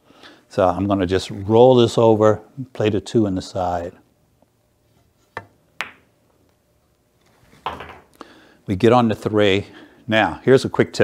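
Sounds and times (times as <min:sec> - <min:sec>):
billiard balls clicking together: 0:05.4 - 0:06.1, 0:07.6 - 0:08.2
cue tip clicking on ball: 0:05.4 - 0:06.1.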